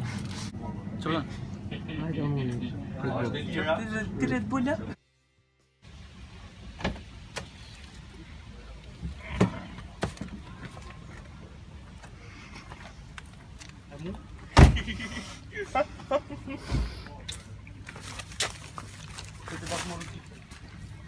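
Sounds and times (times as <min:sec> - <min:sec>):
car door shutting thump: 0:14.6 - 0:14.9.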